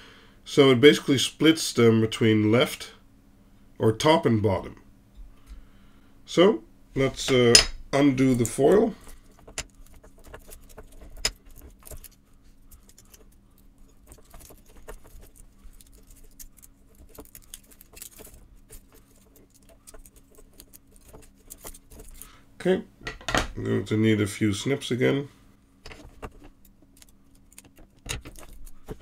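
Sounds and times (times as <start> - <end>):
foil crinkling and clicking: 8.3 - 22.4, 25.9 - 29.0.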